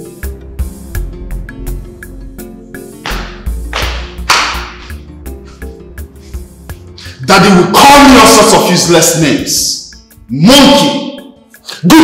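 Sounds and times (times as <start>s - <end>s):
background music with held notes: 0.0s - 12.0s
whip-like hit: 3.1s - 5.0s.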